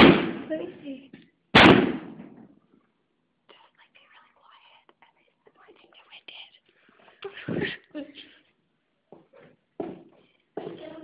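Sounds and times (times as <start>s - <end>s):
hushed whispering voices: 3.5s - 8.4s.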